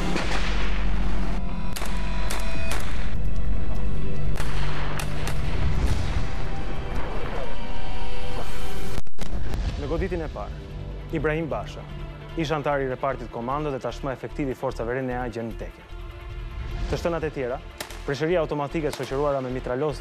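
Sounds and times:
tense soundtrack music: 0.0s - 20.0s.

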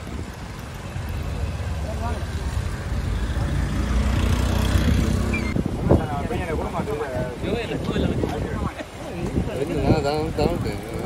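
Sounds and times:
vehicle engine rumble: 0.0s - 8.6s
crowd voices: 0.0s - 11.0s.

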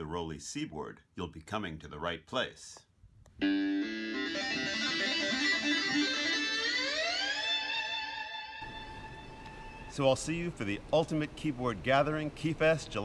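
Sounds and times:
plucked synth keyboard notes: 3.4s - 9.4s.

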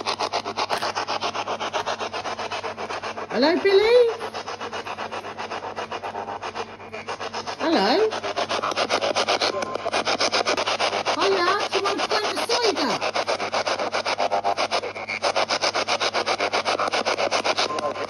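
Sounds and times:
radio static chopping: 0.0s - 18.0s
voice-like broadcast snatches: 0.0s - 18.0s.

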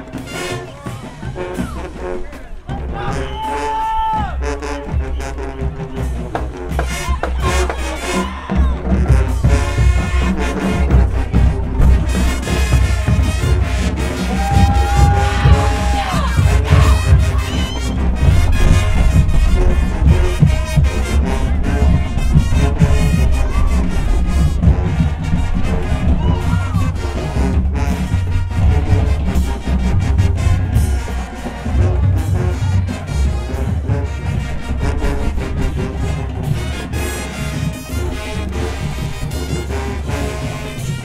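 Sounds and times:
marching band playing: 0.0s - 41.0s.

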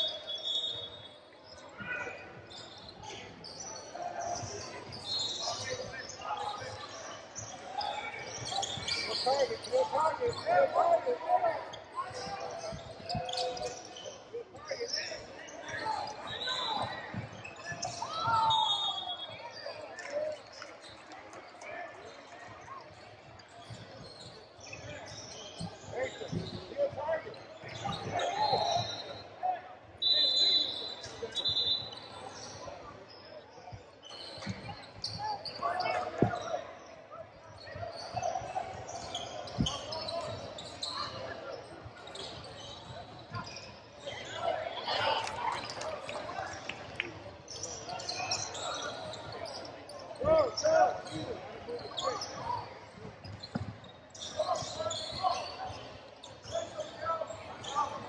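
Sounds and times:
sneaker squeaks: 0.0s - 21.4s, 22.0s - 29.3s, 30.0s - 33.2s, 34.0s - 46.8s, 47.4s - 58.0s.

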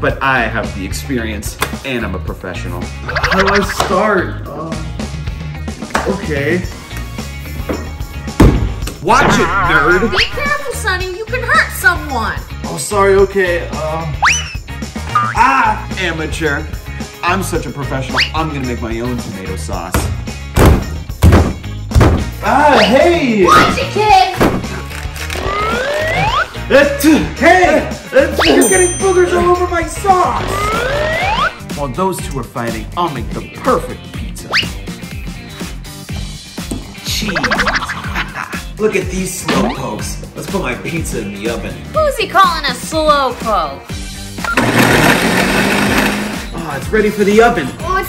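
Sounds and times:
background music: 0.0s - 48.0s
fist punching tomatoes in bowl: 19.9s - 22.4s
blender motor running: 44.4s - 46.6s.

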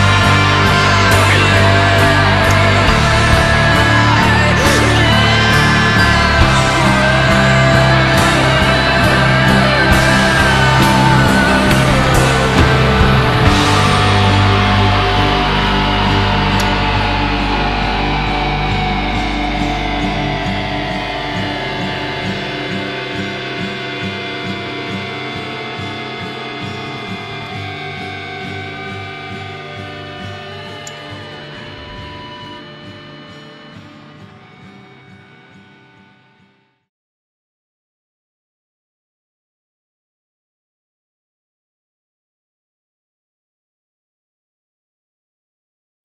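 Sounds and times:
rock music: 0.0s - 35.4s
distorted electric guitar chord: 0.0s - 36.8s.

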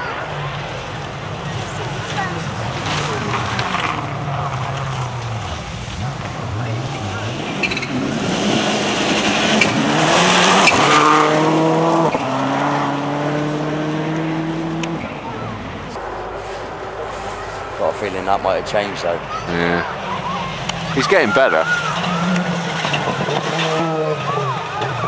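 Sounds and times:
rally car engine at full throttle: 0.0s - 25.0s.

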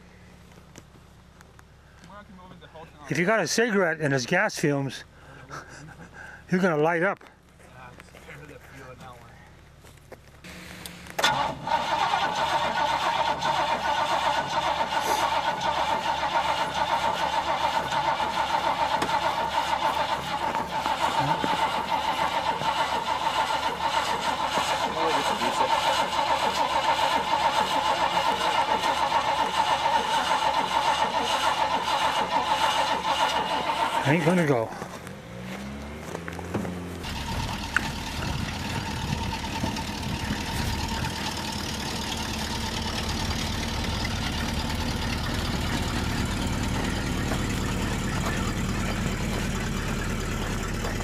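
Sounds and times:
engine high whine: 9.8s - 51.0s
truck engine cranking and running: 9.8s - 51.0s.

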